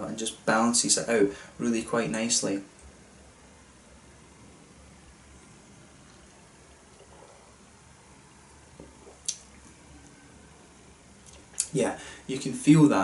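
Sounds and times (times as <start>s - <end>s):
low steady hum: 0.0s - 13.0s
sipping from a glass: 5.9s - 10.2s.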